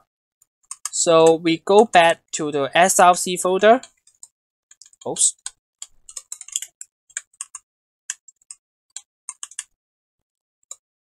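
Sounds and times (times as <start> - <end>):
keyboard typing: 0.6 - 1.4, 3.8 - 9.8.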